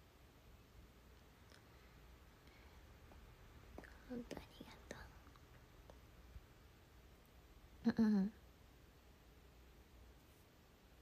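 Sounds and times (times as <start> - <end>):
woman whispering: 3.8 - 5.4.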